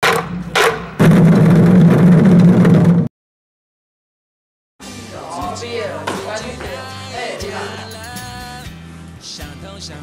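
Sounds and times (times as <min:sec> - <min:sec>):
loud rough rumble: 0:00.3 - 0:03.1.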